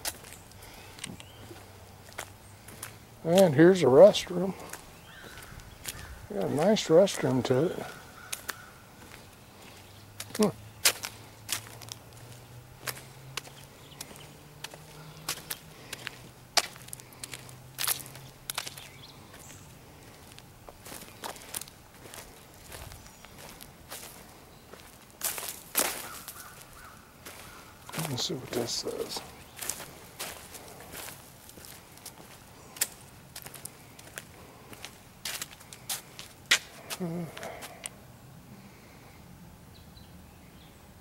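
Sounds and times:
footsteps on concrete: 0:00.0 - 0:37.9.

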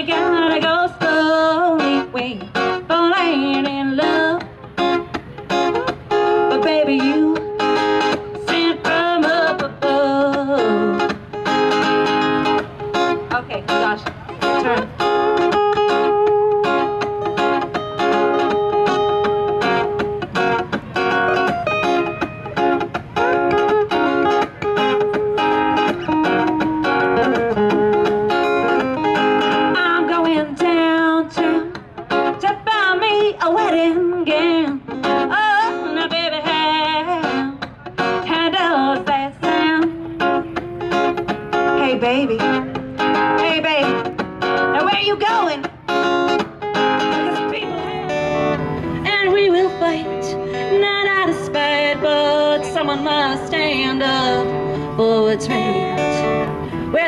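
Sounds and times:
woman singing: 0:00.0 - 0:04.5, 0:05.8 - 0:11.2, 0:13.3 - 0:15.6, 0:29.7 - 0:40.2, 0:41.7 - 0:44.1, 0:44.7 - 0:45.7, 0:47.1 - 0:48.2, 0:49.0 - 0:57.0
country guitar playing: 0:00.0 - 0:57.0.

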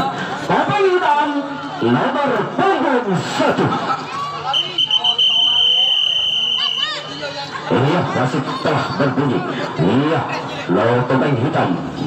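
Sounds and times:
referee's whistle long blast: 0:04.5 - 0:07.0.

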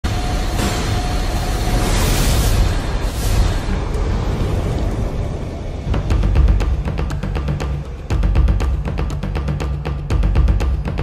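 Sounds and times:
fire whoosh rushing rumble: 0:01.2 - 0:06.6.

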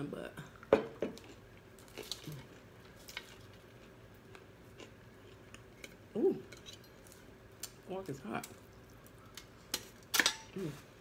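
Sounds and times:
person humming: 0:06.2 - 0:06.4, 0:10.6 - 0:11.0.

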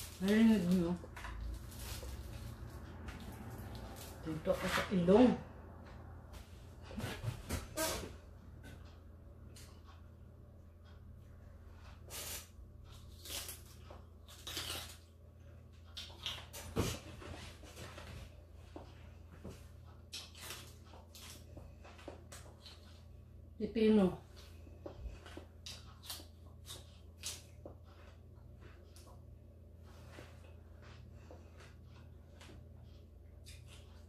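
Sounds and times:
chewing cucumber crunches: 0:12.2 - 0:15.1.

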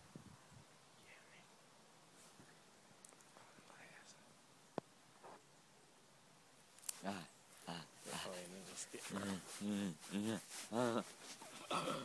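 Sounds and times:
faint whispering: 0:01.0 - 0:01.6, 0:03.3 - 0:04.4.

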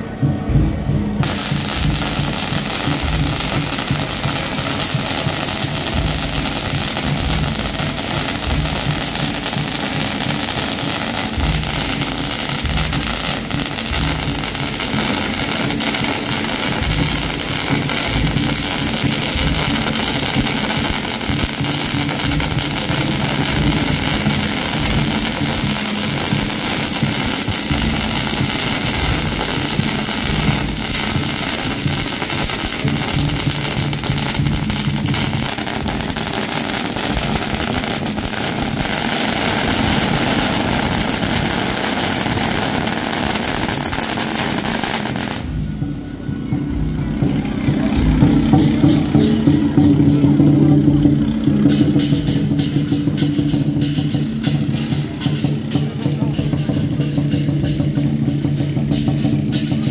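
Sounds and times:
fireworks crackling: 0:00.0 - 0:45.9, 0:48.5 - 0:59.9.

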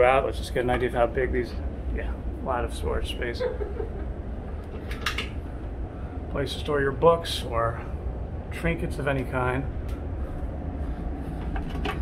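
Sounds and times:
low machinery hum: 0:00.0 - 0:12.0.

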